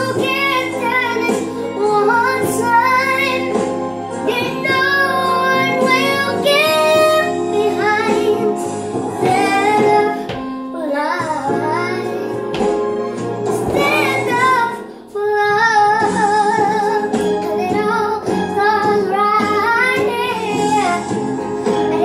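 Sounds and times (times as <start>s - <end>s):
instrumental accompaniment: 0.0s - 22.0s.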